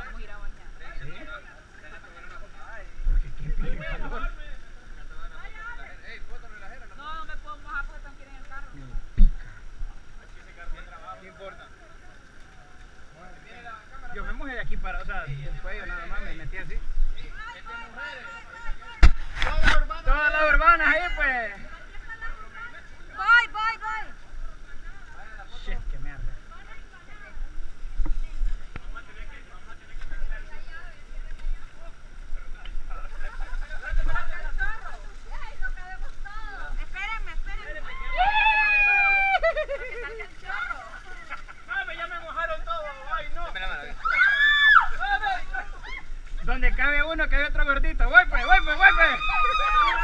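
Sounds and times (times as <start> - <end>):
people talking and calling out: 0.0 - 50.0
steady background hiss: 0.0 - 50.0.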